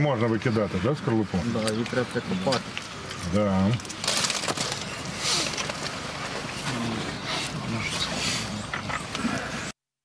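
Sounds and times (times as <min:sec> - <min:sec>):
men talking in low voices: 0:06.6 - 0:09.6.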